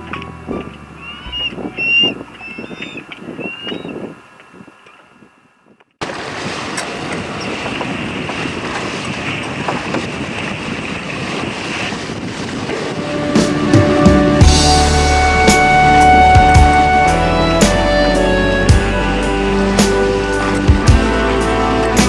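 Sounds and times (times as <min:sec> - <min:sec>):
music: 0:00.0 - 0:02.7, 0:13.0 - 0:22.0
wind on microphone: 0:00.0 - 0:22.0
water running past hull: 0:06.0 - 0:22.0.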